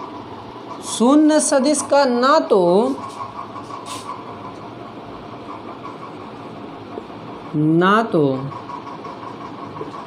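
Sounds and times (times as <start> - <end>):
steady mechanical hum: 0.0 - 10.0
marker scratching on whiteboard: 2.6 - 4.6.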